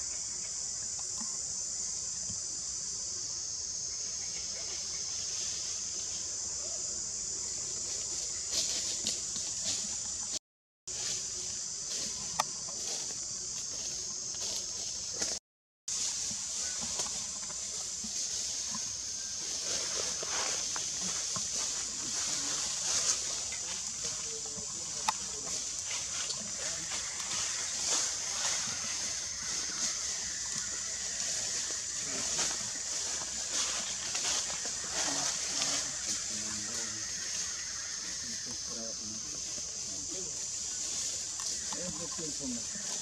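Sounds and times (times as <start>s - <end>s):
monkey sounds: 19.4s - 43.0s.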